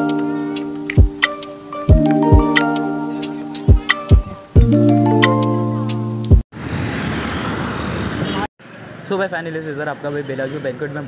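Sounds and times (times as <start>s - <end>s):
road and wind noise: 6.2s - 11.0s.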